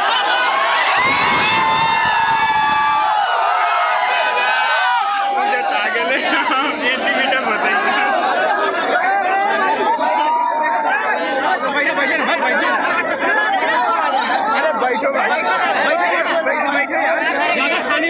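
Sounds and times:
crowd of men chattering: 0.0s - 18.0s.

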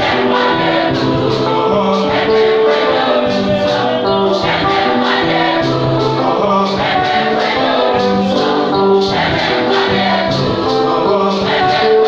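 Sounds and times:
choir singing in harmony: 0.0s - 12.0s.

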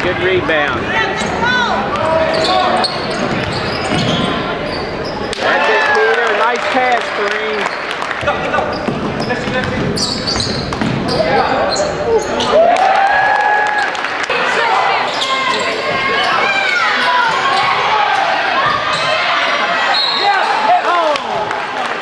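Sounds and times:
voices echoing in a hall: 0.0s - 22.0s
sneakers squeaking: 0.5s - 5.4s, 7.6s - 12.6s, 14.6s - 20.8s
basketball bouncing on wooden floor: 8.8s - 11.2s.

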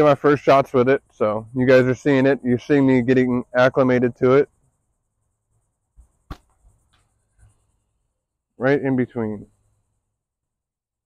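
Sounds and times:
sharp click: 6.0s - 7.1s.

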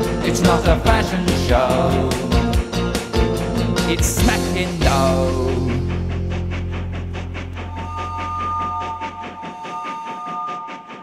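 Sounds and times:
train wheels clattering: 0.0s - 11.0s.

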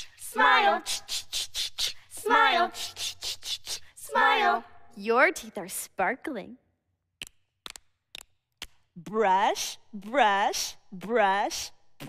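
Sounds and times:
finger snaps: 7.2s - 8.9s.

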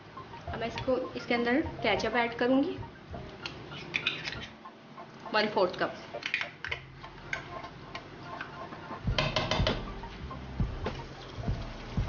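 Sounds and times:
utensils knocking against a wok: 9.1s - 9.9s.

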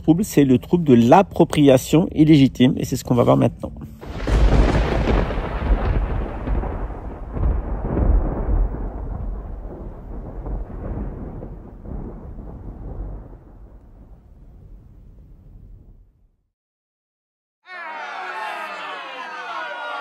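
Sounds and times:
rolling thunder: 4.0s - 16.3s.

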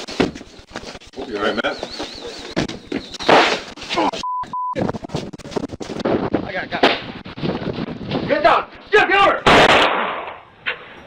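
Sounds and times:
microphone rustle and crackle: 4.8s - 8.4s
gunshots: 9.4s - 10.9s.

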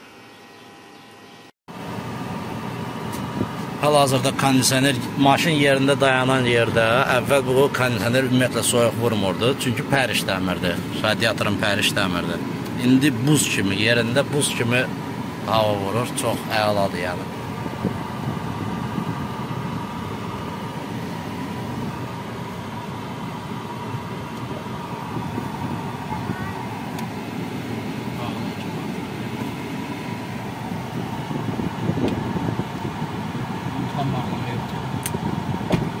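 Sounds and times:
air conditioning blower: 1.7s - 36.0s.

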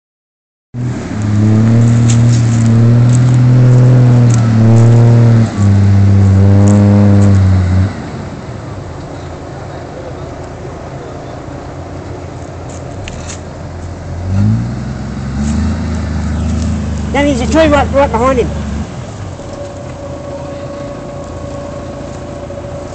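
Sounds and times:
loud low drone: 0.8s - 8.8s
diesel engine revving: 0.8s - 22.9s.

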